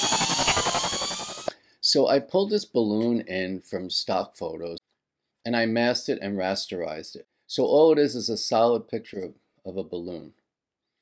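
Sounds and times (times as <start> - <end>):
electronic glitch buzzing rattle: 0.0 - 1.5.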